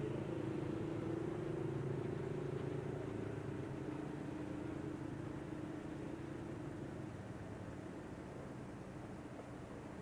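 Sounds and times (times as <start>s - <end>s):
outdoor rumble: 0.0s - 8.5s
low engine hum: 0.0s - 10.0s.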